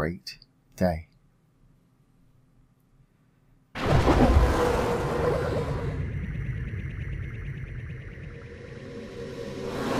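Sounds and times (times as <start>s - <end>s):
low rumble: 3.8s - 9.9s.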